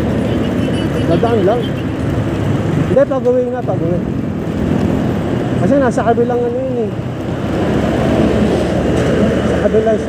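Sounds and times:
road and traffic noise: 0:00.0 - 0:10.0.

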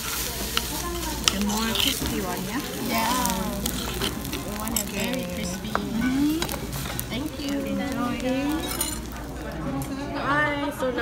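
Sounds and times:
metal spoon scraping rice: 0:00.0 - 0:09.4
rice sizzling in stone bowl: 0:00.0 - 0:10.5
background voices: 0:00.0 - 0:11.0
spoon clinking on bowl: 0:08.4 - 0:09.2.

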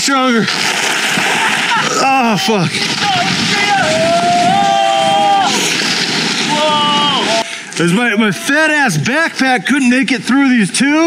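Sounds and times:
man laughing: 0:01.3 - 0:02.6.

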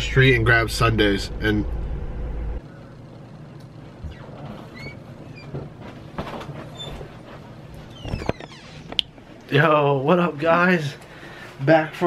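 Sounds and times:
low steady hum: 0:00.0 - 0:12.0
short squeaks: 0:04.0 - 0:05.6
faint knocks and rustles: 0:04.0 - 0:09.4.

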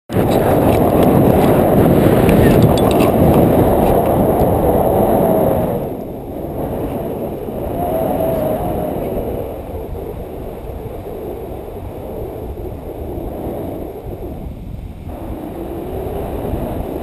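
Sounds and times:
wind buffeting microphone: 0:00.1 - 0:17.0.

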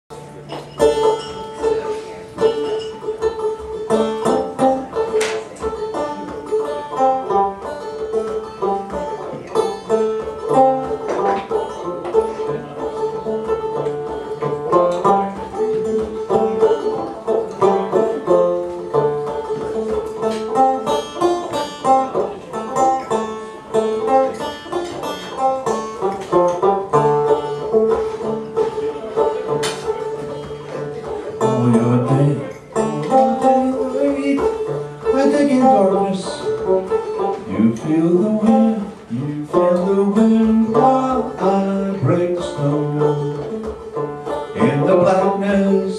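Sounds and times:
banjo picking: 0:00.1 - 0:45.9.

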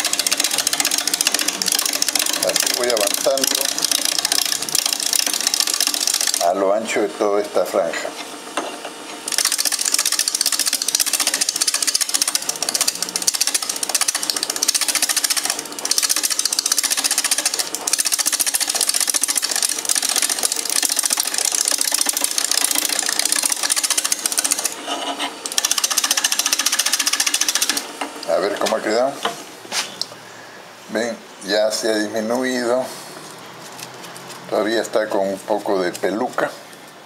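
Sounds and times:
lathe tool chattering on wood: 0:00.0 - 0:06.6, 0:09.2 - 0:29.3, 0:34.7 - 0:36.5.

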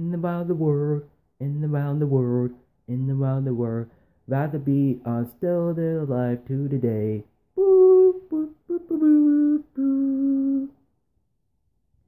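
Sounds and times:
man humming: 0:07.6 - 0:10.8.

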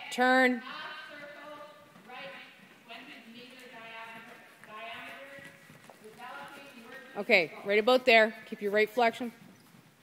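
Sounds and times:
horse hoofbeats: 0:00.9 - 0:10.0.

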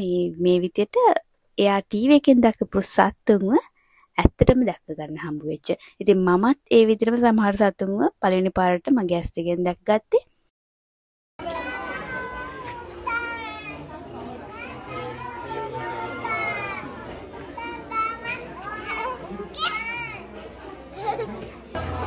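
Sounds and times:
children chattering and calling: 0:11.4 - 0:22.0.

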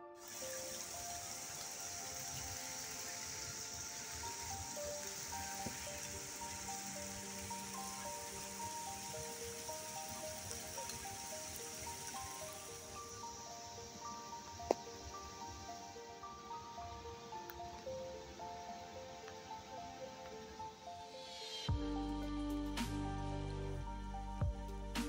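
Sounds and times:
calm background music: 0:00.0 - 0:25.0
water trickling down rock: 0:00.2 - 0:13.0.

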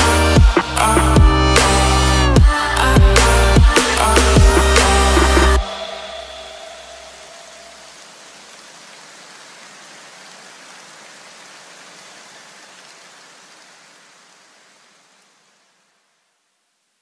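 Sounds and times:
music: 0:00.0 - 0:07.1
steady hiss: 0:00.0 - 0:17.0.

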